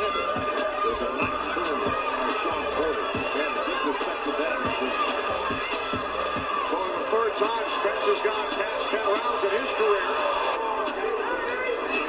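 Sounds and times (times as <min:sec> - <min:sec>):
background music: 0:00.0 - 0:12.0
commentators talking: 0:00.0 - 0:12.0.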